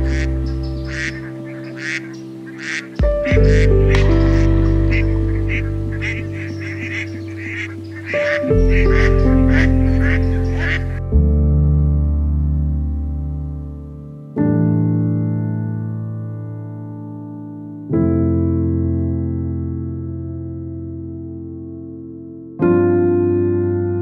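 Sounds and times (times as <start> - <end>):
waterfowl calling: 0.0 - 11.0
sustained keyboard chords: 0.0 - 24.0.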